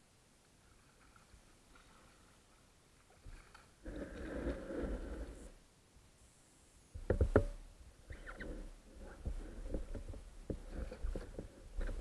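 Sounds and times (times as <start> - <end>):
paddle splashing water: 0.6 - 5.4.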